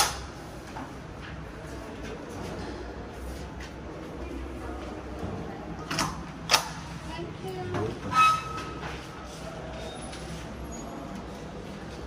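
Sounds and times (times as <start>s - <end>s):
steady room hum: 0.0s - 12.0s.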